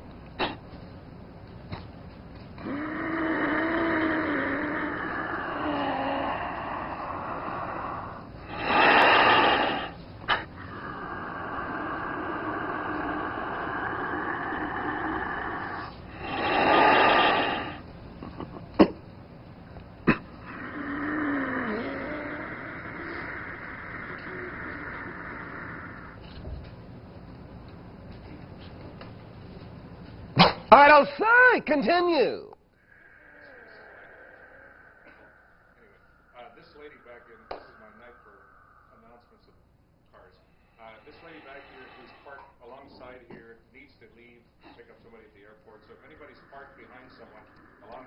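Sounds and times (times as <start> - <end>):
man breathing deeply: 5.4 - 17.9, 32.7 - 39.3, 40.4 - 42.4
forceful exhales: 6.9 - 11.7, 15.2 - 17.8.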